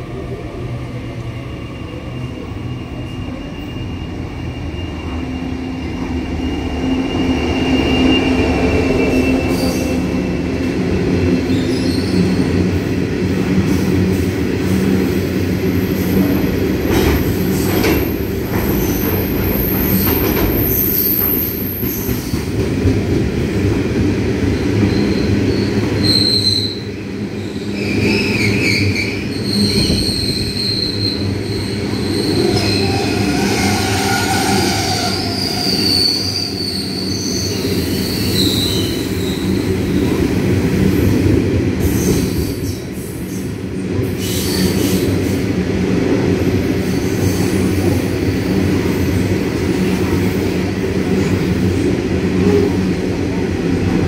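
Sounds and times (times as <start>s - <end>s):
train wheels rumbling on rails: 0.0s - 54.0s
high wheel squeals: 2.0s - 10.2s, 27.5s - 39.7s.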